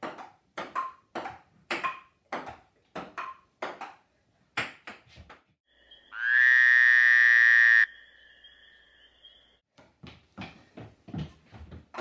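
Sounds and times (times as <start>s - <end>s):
harsh electronic buzzing tone: 6.2s - 7.9s
faint high steady tone: 7.7s - 9.6s.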